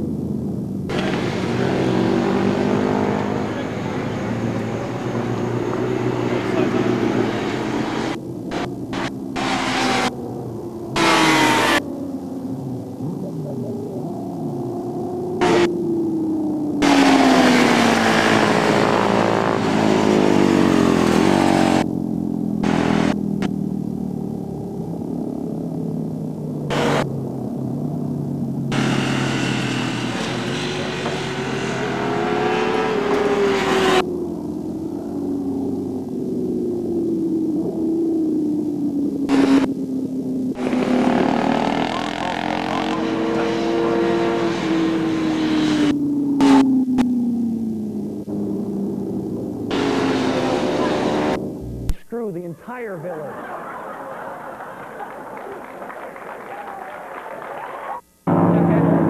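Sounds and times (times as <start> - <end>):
motorbike engines revving: 0.0 - 59.0.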